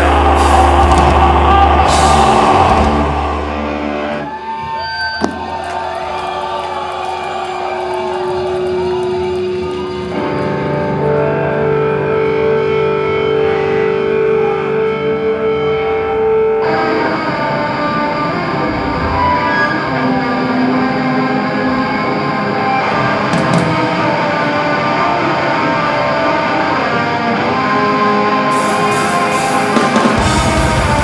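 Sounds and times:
distorted electric guitar drone: 0:00.0 - 0:04.4, 0:08.4 - 0:31.0
metal band playing live: 0:00.0 - 0:04.6, 0:07.6 - 0:31.0
drums: 0:00.0 - 0:13.9, 0:16.2 - 0:31.0.

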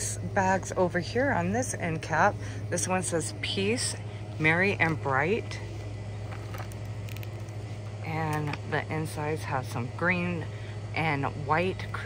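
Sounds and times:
low hum of room tone: 0:00.0 - 0:12.0.

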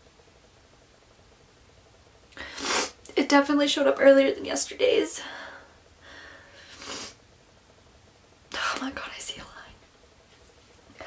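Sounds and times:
woman whispering: 0:08.5 - 0:09.8.

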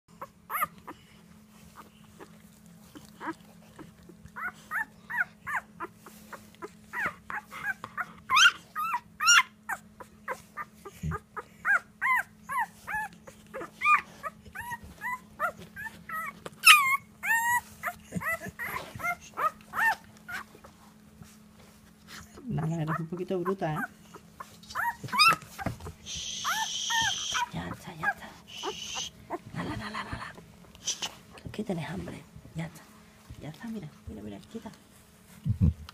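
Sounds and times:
steady low hum: 0:00.1 - 0:35.9
puppy whimpering and squeaking: 0:00.2 - 0:21.0, 0:22.2 - 0:29.6.

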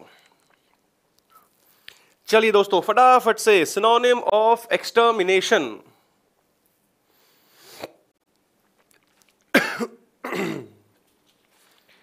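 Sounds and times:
man coughing: 0:09.5 - 0:10.8.

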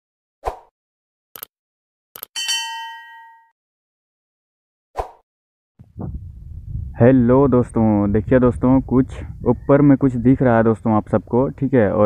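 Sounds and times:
bright bell ding: 0:02.4 - 0:03.6.

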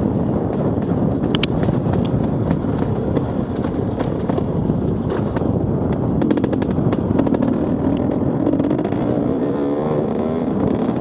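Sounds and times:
sharp clicks and knocks: 0:01.2 - 0:04.4
dirt bike engine revving: 0:07.2 - 0:11.0.

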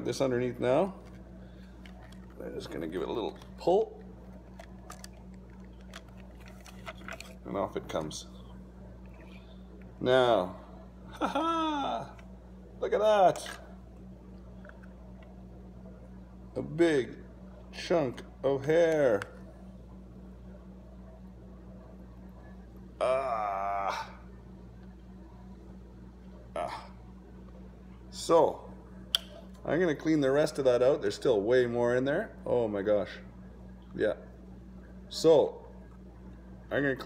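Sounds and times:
steady low hum: 0:00.0 - 0:37.0.

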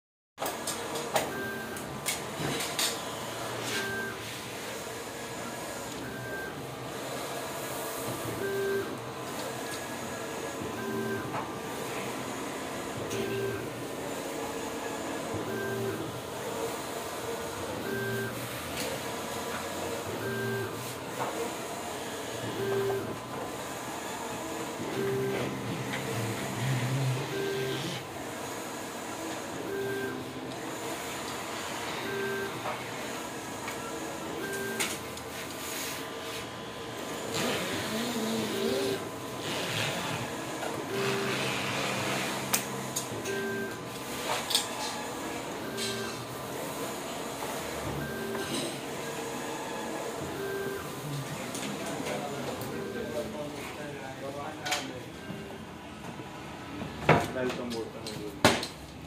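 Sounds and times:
printer motor whine: 0:00.4 - 0:56.8.

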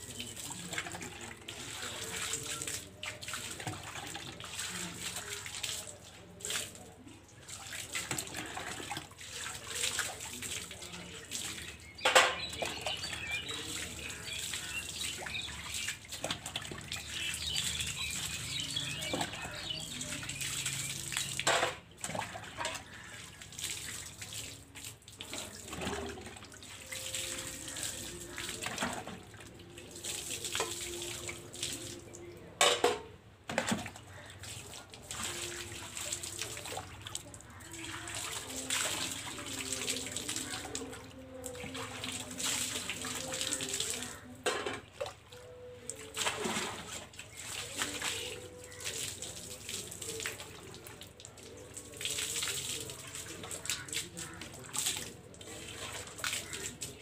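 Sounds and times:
water splashing on concrete floor: 0:00.0 - 0:57.0.

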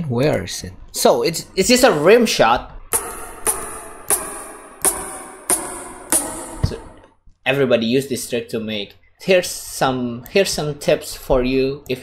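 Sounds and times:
rim-shot drum sample clicks: 0:02.9 - 0:07.1
low thump: 0:03.0 - 0:07.1.

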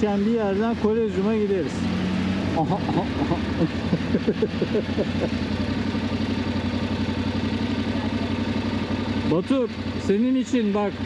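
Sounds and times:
motorcycle engine idling: 0:00.0 - 0:01.7, 0:02.3 - 0:11.0.

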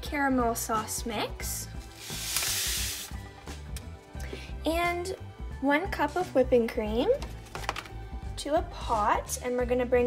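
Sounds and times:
background music: 0:00.0 - 0:10.0
powder hissing in hot butter: 0:02.0 - 0:03.2.

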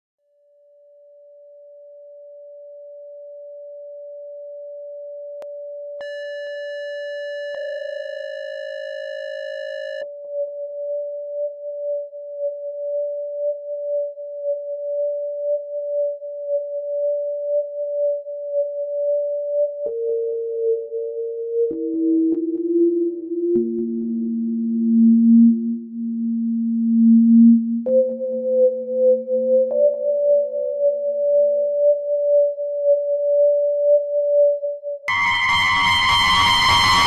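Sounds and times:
pure synthesizer tone: 0:06.0 - 0:13.7, 0:17.5 - 0:37.0
brighter higher synth tone: 0:35.1 - 0:37.0.

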